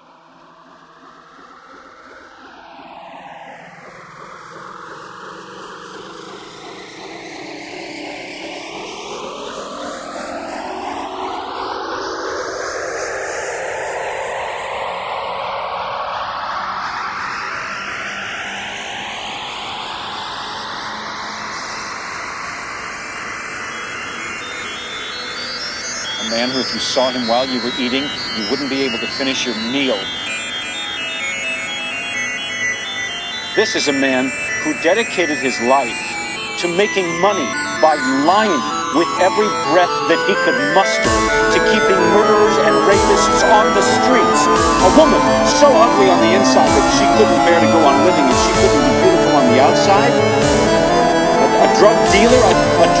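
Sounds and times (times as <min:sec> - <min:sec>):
whooshing electronic swell: 0:00.0 - 0:26.3.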